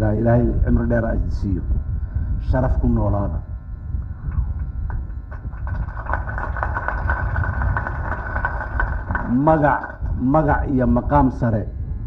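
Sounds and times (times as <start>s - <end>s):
low rumble: 0.0s - 12.0s
crowd applauding: 5.3s - 10.1s.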